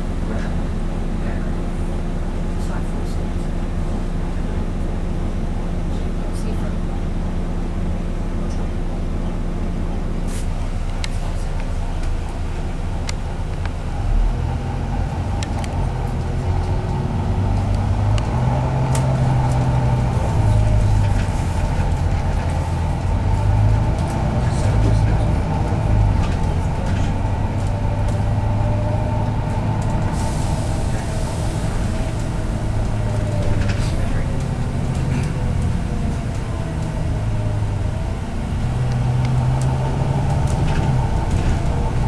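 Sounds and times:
bus engine and road drone: 0:00.0 - 0:42.0.

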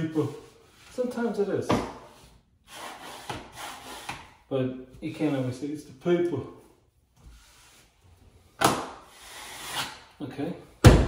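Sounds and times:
wallpaper smoother scraping: 0:02.1 - 0:04.3, 0:07.2 - 0:08.1.

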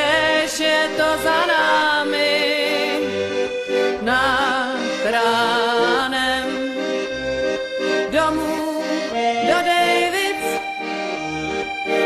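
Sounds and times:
accordion melody: 0:00.0 - 0:12.0.

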